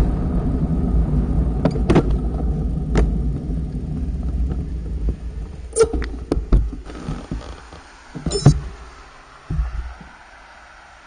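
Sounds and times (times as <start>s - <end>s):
faint steady hiss: 0.0s - 11.0s
low muffled thumps: 9.5s - 10.2s.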